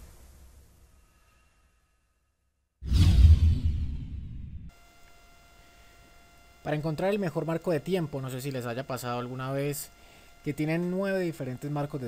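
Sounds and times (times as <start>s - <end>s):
cinematic boom with hiss: 2.8s - 4.7s.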